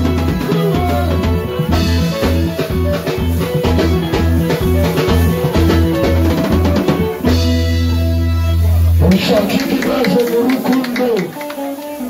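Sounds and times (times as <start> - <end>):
live band dance music: 0.0 - 12.0.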